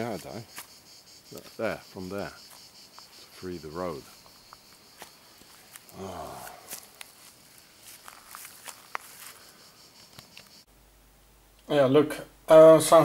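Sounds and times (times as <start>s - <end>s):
insects chirring: 0.0s - 13.0s
man humming: 5.9s - 6.7s.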